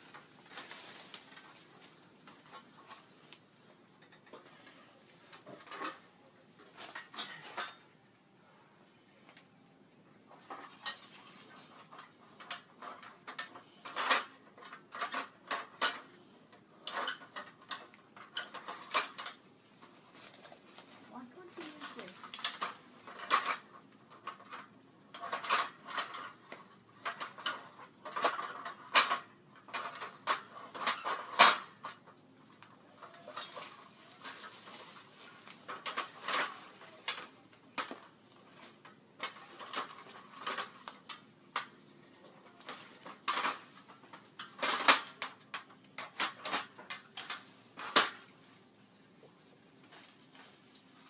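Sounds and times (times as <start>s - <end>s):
aluminium ladder clanking: 4.0s - 8.0s, 10.3s - 48.6s.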